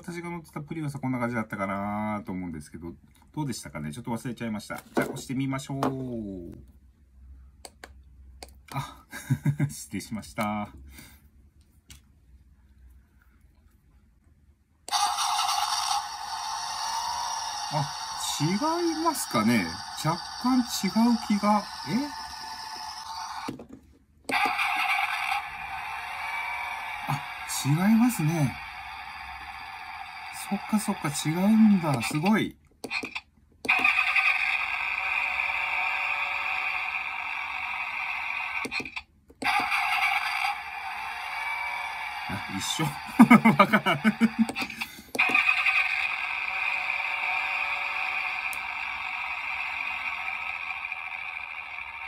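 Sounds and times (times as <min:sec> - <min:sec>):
tinny toy engine-start sound: 0:14.9 - 0:23.5, 0:24.3 - 0:52.0.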